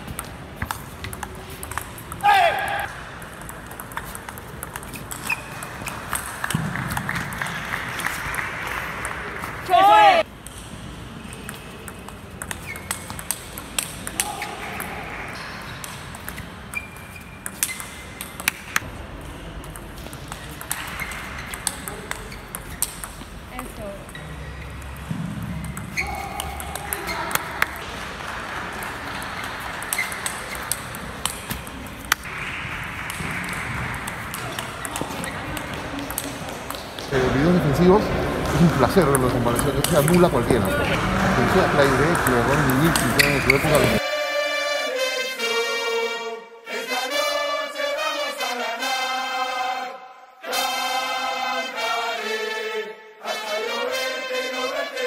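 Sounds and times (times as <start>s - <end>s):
table tennis ball clicking: 0.1s - 2.2s, 3.2s - 7.4s, 11.3s - 14.3s, 15.8s - 18.8s, 19.7s - 23.3s, 33.1s - 37.0s, 39.1s - 40.8s
shoes squeaking on floor: 4.0s - 7.4s, 11.2s - 18.8s, 19.9s - 27.8s, 29.2s - 32.3s, 33.8s - 37.2s, 42.8s - 44.0s
murmur of voices: 34.3s - 44.0s.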